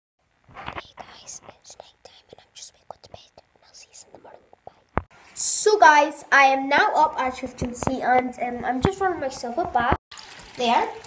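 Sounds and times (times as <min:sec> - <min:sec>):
woman whispering: 0:00.6 - 0:05.0.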